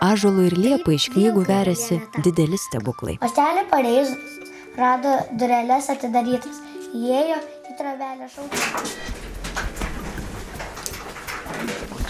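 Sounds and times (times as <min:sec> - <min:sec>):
mobile shelving rolling on rails: 0:08.6 - 0:12.0.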